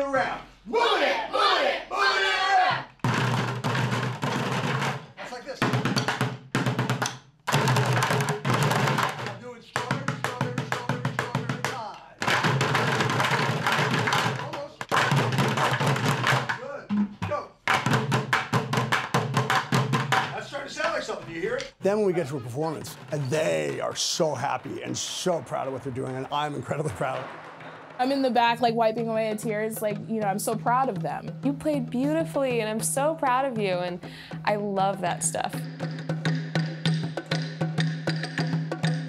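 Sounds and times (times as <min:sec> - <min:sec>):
sticks drumming on plastic buckets: 0:03.0 - 0:26.1, 0:28.1 - 0:37.5.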